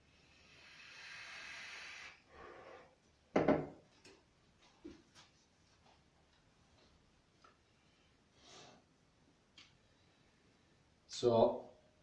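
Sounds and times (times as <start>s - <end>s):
faint breathing: 0.0s - 3.0s.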